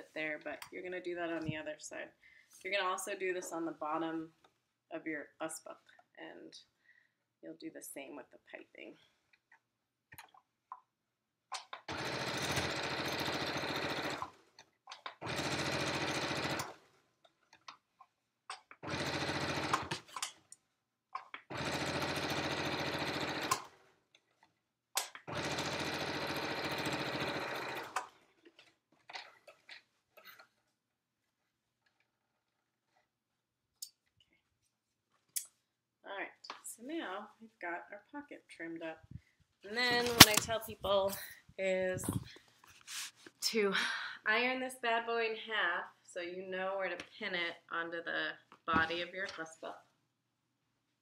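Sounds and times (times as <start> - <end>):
electric sewing machine stitching: 11.9 - 14.4, 15.0 - 16.9, 18.8 - 20.2, 21.5 - 23.8, 25.2 - 28.2.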